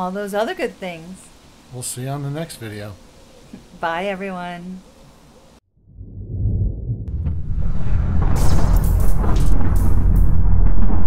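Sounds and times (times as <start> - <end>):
faint outdoor background: 0.0 - 5.8
deep thunder-like rumble: 5.8 - 11.0.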